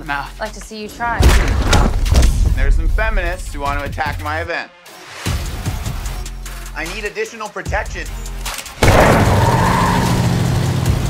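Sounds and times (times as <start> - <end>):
car tyres squealing: 8.8 - 10.7.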